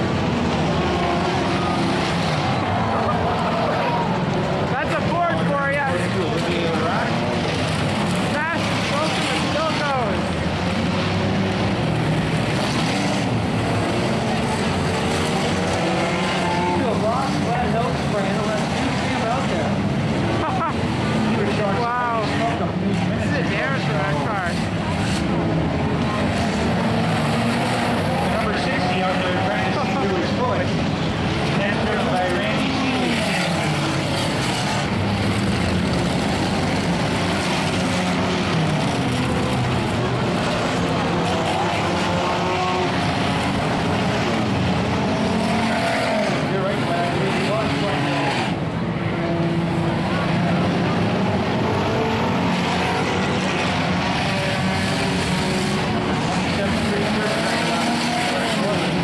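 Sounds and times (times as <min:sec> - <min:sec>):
racing car engines: 0:00.0 - 0:59.0.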